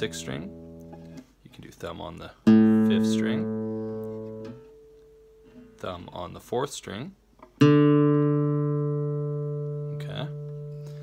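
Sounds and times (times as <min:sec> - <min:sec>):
classical guitar bass note: 0:00.0 - 0:01.2, 0:02.5 - 0:05.8, 0:07.6 - 0:11.0.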